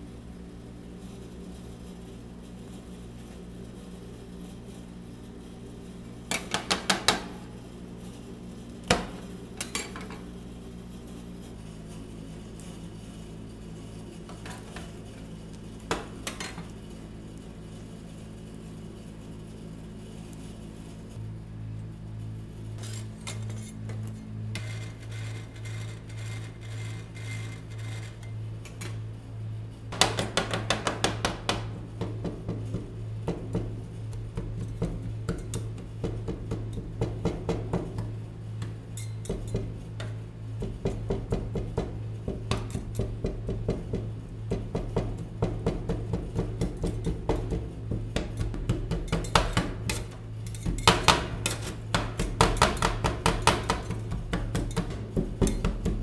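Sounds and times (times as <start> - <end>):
steady low machine hum: 0.0 - 56.0.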